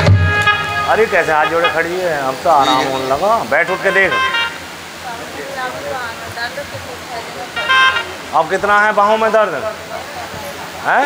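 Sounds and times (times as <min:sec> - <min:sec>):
steady background hiss: 0:00.0 - 0:11.0
soft indistinct voices: 0:00.8 - 0:11.0.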